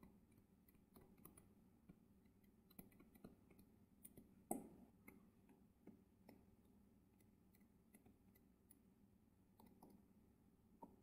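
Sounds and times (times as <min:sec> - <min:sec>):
stylus tapping on tablet screen: 0:02.6 - 0:06.5.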